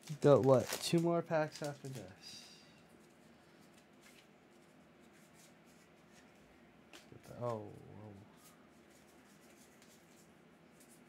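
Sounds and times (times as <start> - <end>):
trading cards rustling: 0.0 - 11.0.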